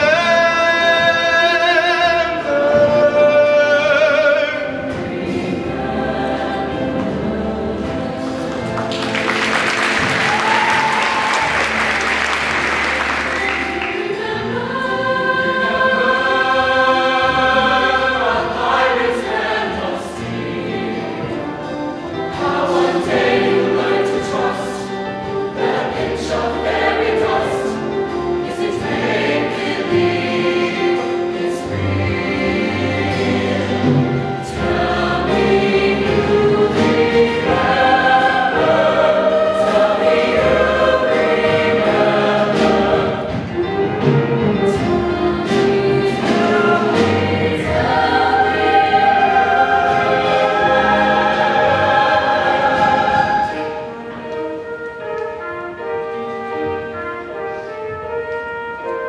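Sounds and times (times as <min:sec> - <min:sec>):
bass: 0:00.0 - 0:53.3
choir singing sustained chords: 0:00.0 - 0:58.0.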